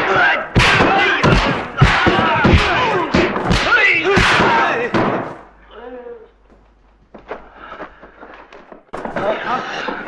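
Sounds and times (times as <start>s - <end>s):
punch and kick impacts: 0.0s - 5.4s
men shouting and yelling: 0.0s - 6.3s.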